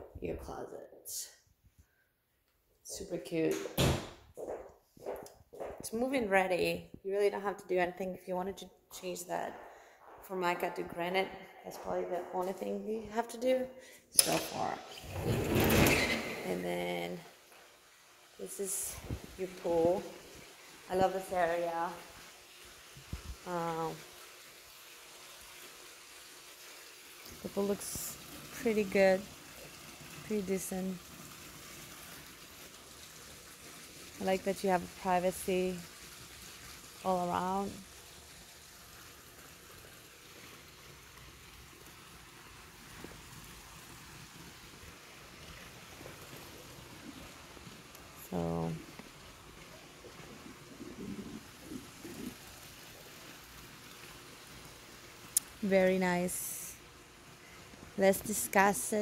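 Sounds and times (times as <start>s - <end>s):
faint hiss-like background noise: 0.0s - 59.0s
outdoor background noise: 1.6s - 59.0s.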